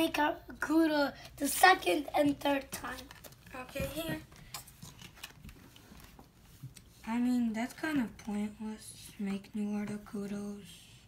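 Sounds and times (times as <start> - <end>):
cards clicking and rustling: 2.2 - 6.4.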